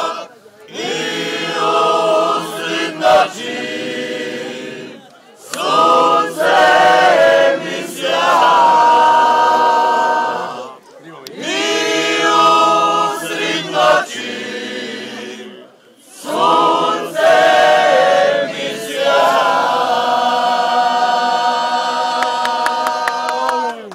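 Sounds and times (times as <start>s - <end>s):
group singing unaccompanied: 0.0s - 23.9s.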